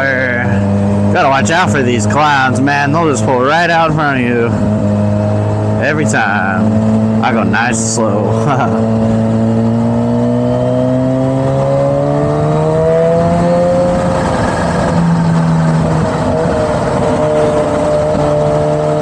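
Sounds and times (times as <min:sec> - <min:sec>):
wind and road noise: 0:00.0 - 0:19.0.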